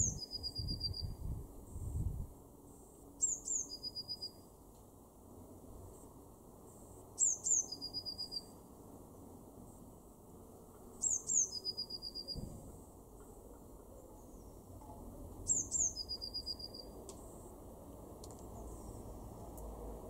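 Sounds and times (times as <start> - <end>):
blue tit singing: 0.0 - 1.2, 3.2 - 4.4, 7.2 - 8.6, 11.0 - 12.5, 15.4 - 16.9.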